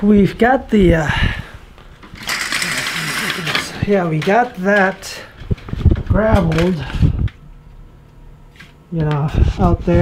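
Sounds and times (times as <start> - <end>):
window blind being worked: 2.2 - 3.9.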